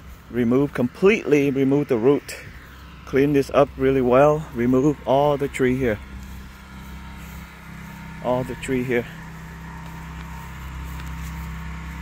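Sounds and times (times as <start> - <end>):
motor humming: 0.0 - 12.0.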